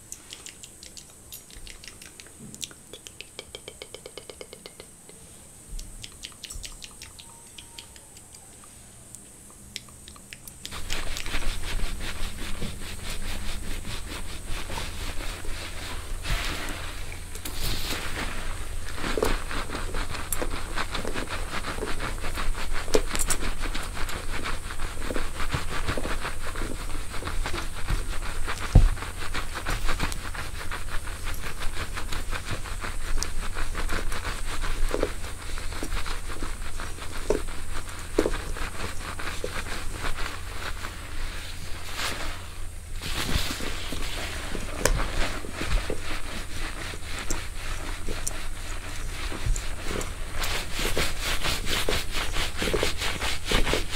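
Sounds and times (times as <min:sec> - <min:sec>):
hair crackling and rustling: 0:10.5 - 0:53.9.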